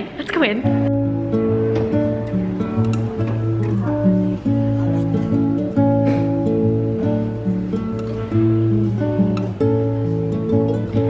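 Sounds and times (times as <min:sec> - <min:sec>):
acoustic guitar playing: 0:00.3 - 0:11.0.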